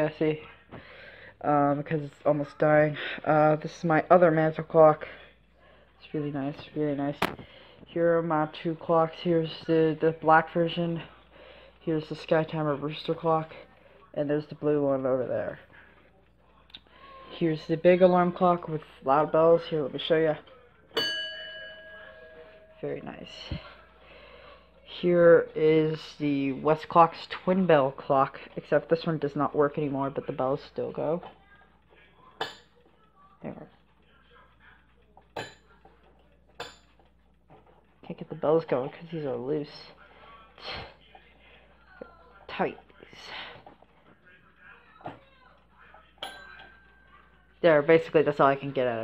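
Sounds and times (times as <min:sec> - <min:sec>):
alarm clock bell ringing: 0:21.0 - 0:23.7.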